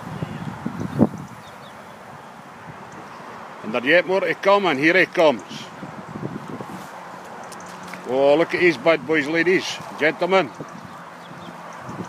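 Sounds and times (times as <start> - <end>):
wind buffeting the microphone: 0.0 - 3.9, 5.1 - 12.0
outdoor background noise: 0.0 - 12.0.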